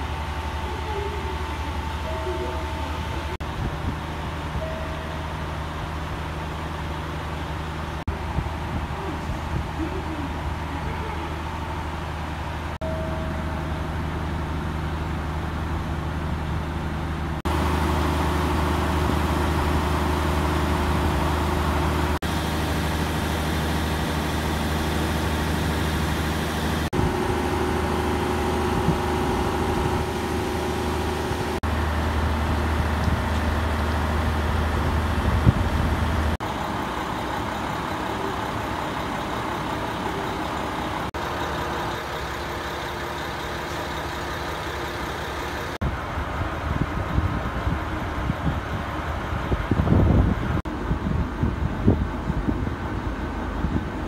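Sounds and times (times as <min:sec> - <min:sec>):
diesel railcar engine idling: 0:00.0 - 0:54.0.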